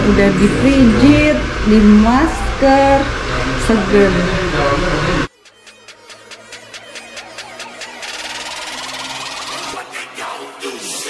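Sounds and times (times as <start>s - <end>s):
buzzing whoosh with rising sweep: 0.0s - 9.8s.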